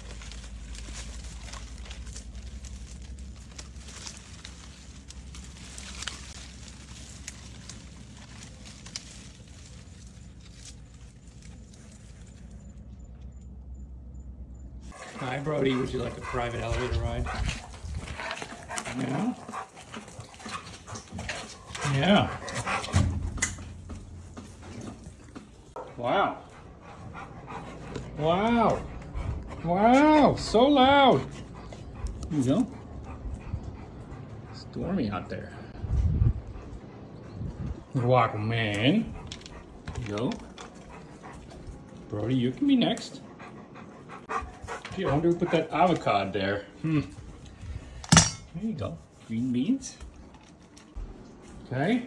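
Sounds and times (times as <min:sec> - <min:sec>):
rustling leaves: 0:00.0 - 0:13.0, 0:14.8 - 0:33.4
steady low rumble: 0:00.0 - 0:42.3
person speaking: 0:14.9 - 0:17.7
light steps on gravel: 0:14.9 - 0:22.7.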